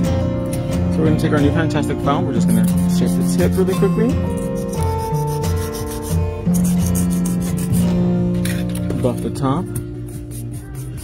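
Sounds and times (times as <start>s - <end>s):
background music: 0.0s - 11.0s
nail file rubbing: 2.5s - 3.7s, 4.3s - 7.9s, 10.0s - 11.0s.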